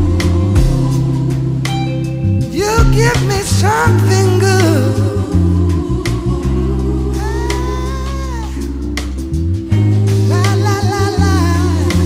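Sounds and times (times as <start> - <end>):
pop-soul band playing: 0.0 - 12.0.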